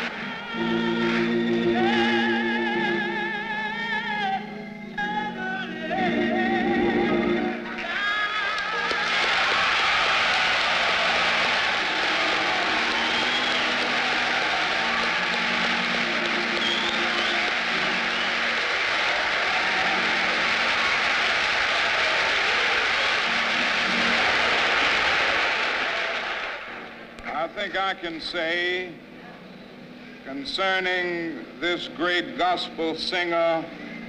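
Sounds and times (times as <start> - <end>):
crowd applauding and cheering: 0.0 - 4.0, 7.0 - 27.4.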